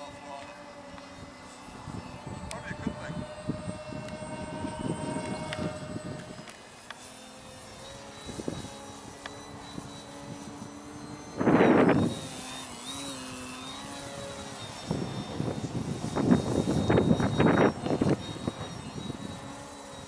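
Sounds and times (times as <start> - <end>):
model plane motor whining: 0.0 - 20.0
rush of wind noise: 1.2 - 6.5, 8.0 - 12.4, 14.1 - 19.6.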